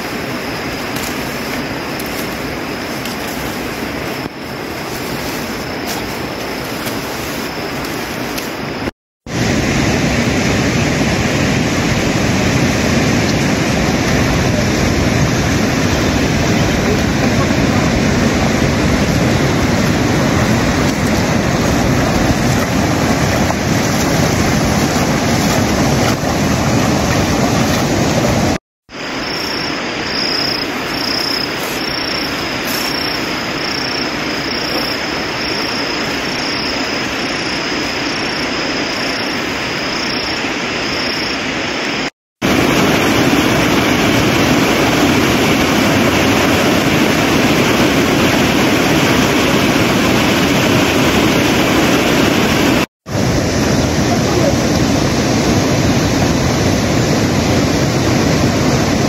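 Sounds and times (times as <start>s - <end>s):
rushing water: 0.0s - 59.0s.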